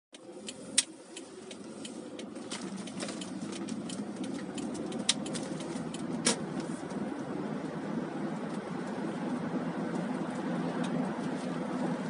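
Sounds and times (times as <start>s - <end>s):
sharp clicks and ticks: 0.1s - 7.8s
car road and engine noise: 0.1s - 12.0s.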